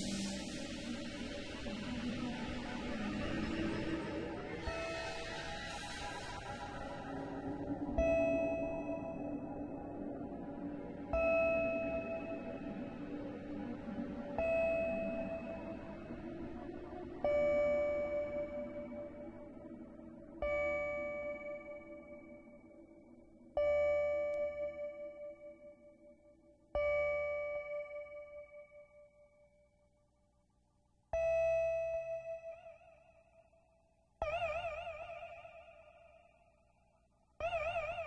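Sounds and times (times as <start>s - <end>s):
low synthesizer pad: 0.0s - 26.2s.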